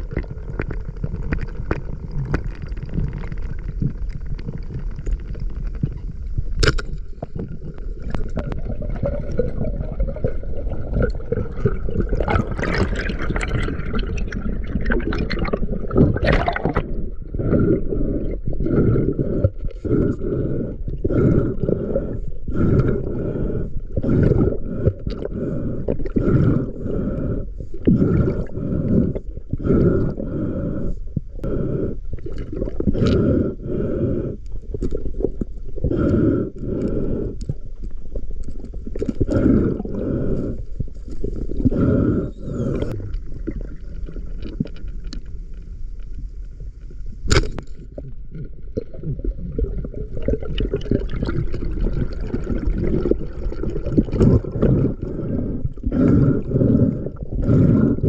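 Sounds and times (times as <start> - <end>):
muffled underwater rushing: 0.0 - 58.0.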